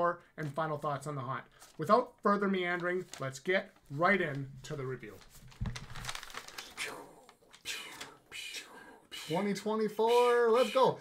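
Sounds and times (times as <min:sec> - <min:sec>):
paper rustling and crinkling: 0:01.5 - 0:08.2.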